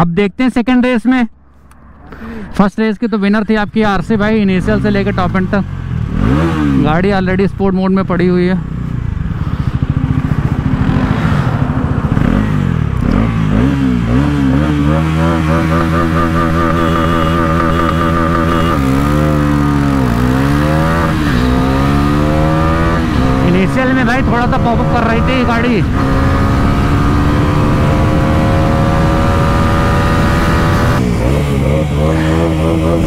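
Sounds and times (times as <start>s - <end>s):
motorcycle engine revving: 4.2s - 33.0s.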